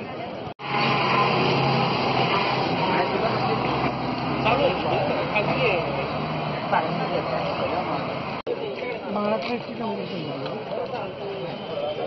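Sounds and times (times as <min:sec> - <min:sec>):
bus diesel engine humming: 0:00.2 - 0:08.5.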